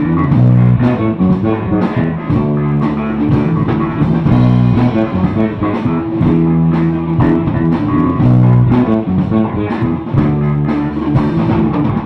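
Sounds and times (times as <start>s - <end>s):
electric guitar: 0.0s - 12.0s
held bass guitar notes: 0.0s - 12.0s.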